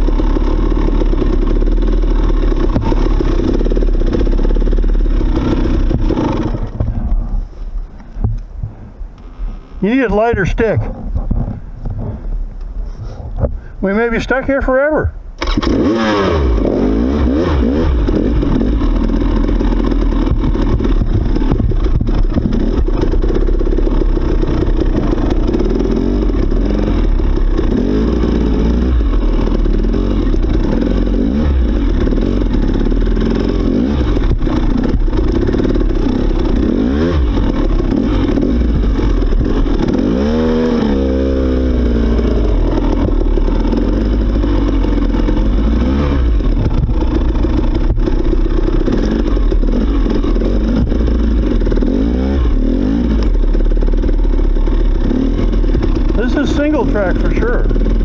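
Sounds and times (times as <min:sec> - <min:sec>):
dirt bike engine revving: 0:00.0 - 0:07.4, 0:09.2 - 0:12.5, 0:13.9 - 0:58.0.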